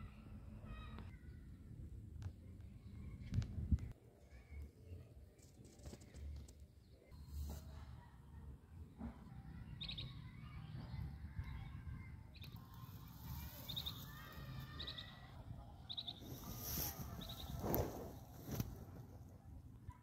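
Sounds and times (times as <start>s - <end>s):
birds chirping: 9.5s - 18.5s.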